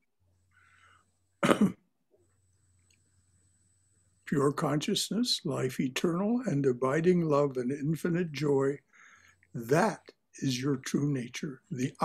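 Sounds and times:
man clearing his throat: 1.4s - 1.8s.

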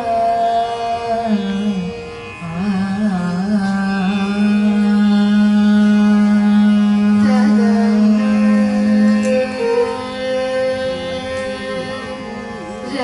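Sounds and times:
classical vocal singing: 0.0s - 13.0s
violin accompaniment: 0.0s - 13.0s.

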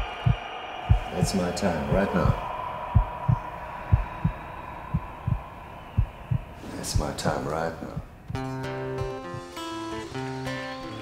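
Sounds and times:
low double thumps like heartbeat: 0.0s - 9.5s
steady hum: 0.0s - 9.5s.

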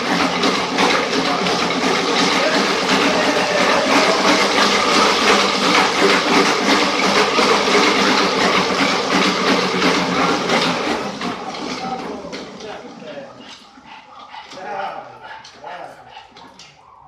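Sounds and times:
treadmill rollers rattling: 0.0s - 17.0s.

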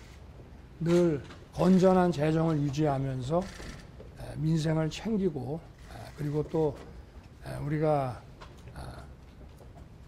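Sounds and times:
low room noise: 0.0s - 10.0s
man speaking: 4.2s - 6.8s, 7.4s - 9.2s.

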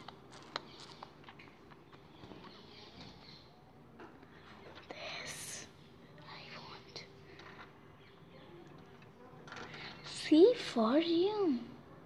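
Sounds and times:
person whispering: 4.7s - 7.2s.

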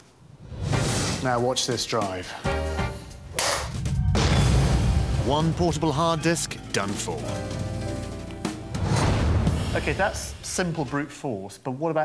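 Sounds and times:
deep boom: 3.8s - 6.2s.

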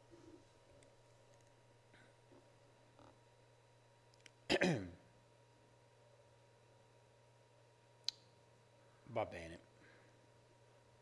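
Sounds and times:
faint low hum: 0.0s - 11.0s
man coughing: 4.5s - 5.0s.

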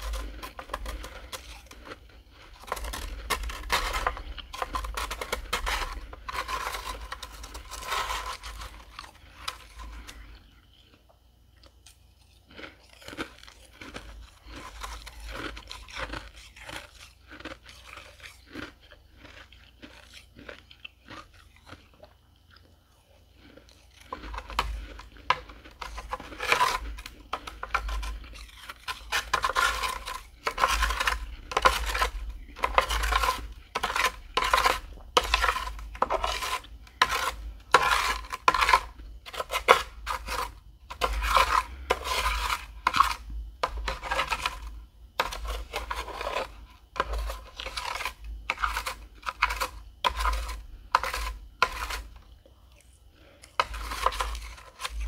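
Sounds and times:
metal spoon scraping frost: 0.0s - 11.0s, 12.6s - 21.9s, 23.5s - 55.0s.

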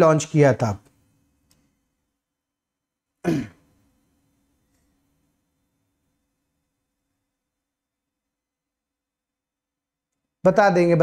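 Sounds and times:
man clearing his throat: 3.2s - 3.7s.

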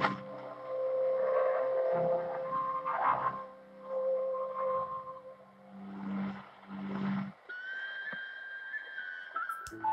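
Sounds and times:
instrumental music on shortwave radio: 0.0s - 9.9s.

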